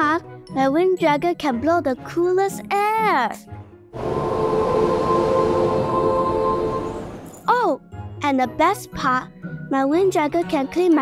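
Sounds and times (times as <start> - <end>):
rushing wind: 4.0 - 7.3
sustained musical tones: 4.0 - 7.4.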